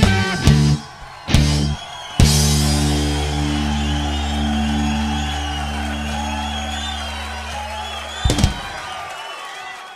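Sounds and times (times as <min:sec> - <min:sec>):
rock chord ringing out: 0:02.3 - 0:08.8
loud thump: 0:08.2 - 0:08.8.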